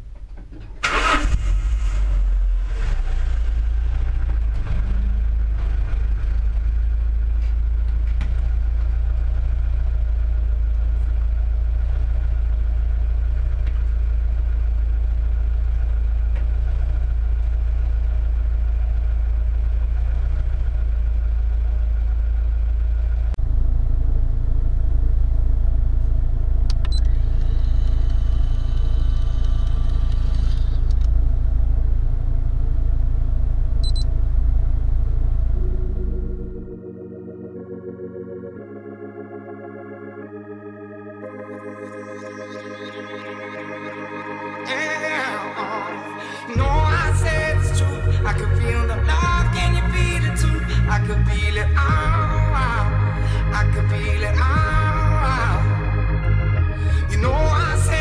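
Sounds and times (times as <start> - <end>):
car engine idling: 0.0 - 37.8, 41.5 - 58.0
hum: 0.0 - 58.0.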